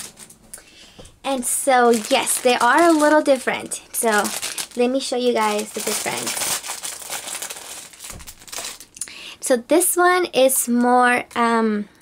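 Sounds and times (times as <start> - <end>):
fabric flower rustling and crinkling: 0.0 - 0.5, 1.2 - 9.0.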